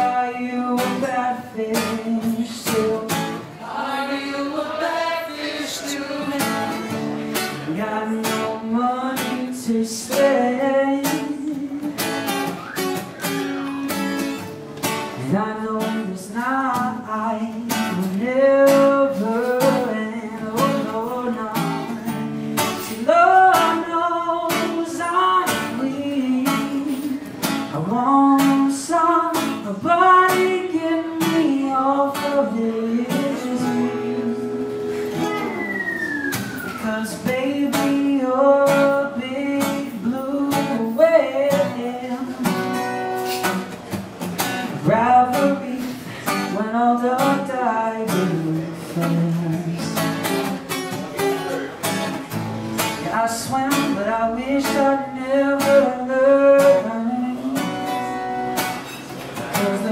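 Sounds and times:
man singing: 0.0s - 12.8s, 15.0s - 35.9s, 36.6s - 43.8s, 44.6s - 52.0s, 52.8s - 59.9s
strummed acoustic guitar: 0.0s - 59.9s.

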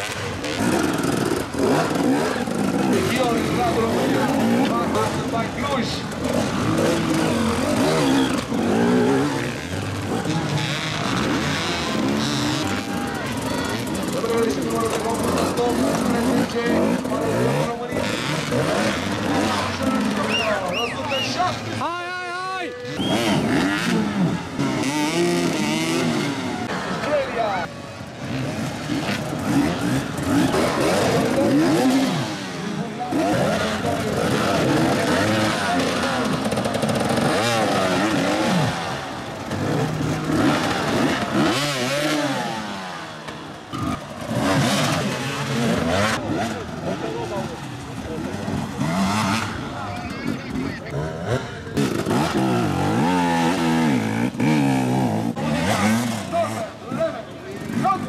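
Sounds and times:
dirt bike engines revving: 0.0s - 58.0s
voices: 0.0s - 58.0s.

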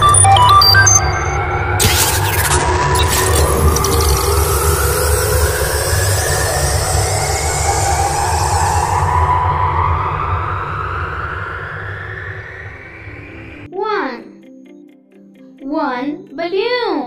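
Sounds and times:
deep steady rumble: 0.0s - 13.7s
rising tones: 0.0s - 13.7s
hissing wash: 1.8s - 13.7s.

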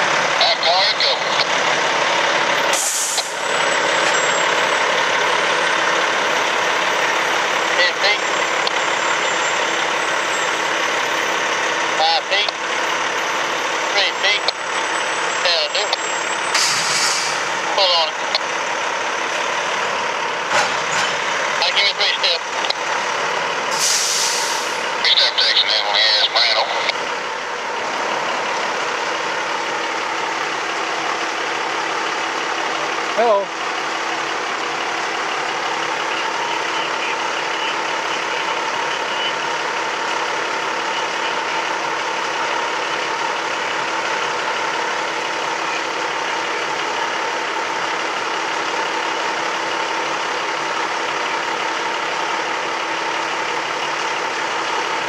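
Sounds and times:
truck engine running: 0.0s - 55.0s
air brakes hissing: 2.7s - 3.4s, 16.5s - 17.6s, 23.7s - 24.8s
rail cars squealing: 2.7s - 5.6s, 6.2s - 11.8s.

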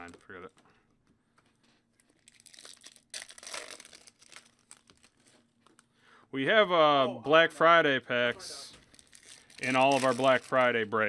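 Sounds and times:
foil wrapper crinkling and tearing: 2.0s - 5.9s, 8.8s - 10.8s.

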